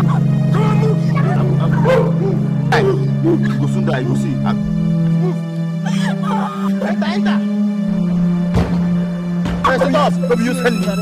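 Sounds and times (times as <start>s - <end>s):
background music: 0.0s - 11.0s
woman wailing sobs: 5.1s - 7.2s.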